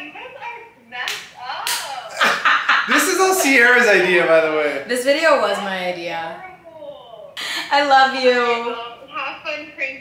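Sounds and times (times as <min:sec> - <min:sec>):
people laughing loudly: 0:02.1 - 0:03.8.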